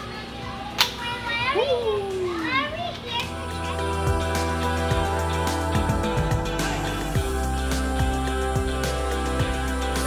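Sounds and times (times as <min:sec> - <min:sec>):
children squealing and calling: 0:00.0 - 0:08.4
music: 0:02.1 - 0:10.0.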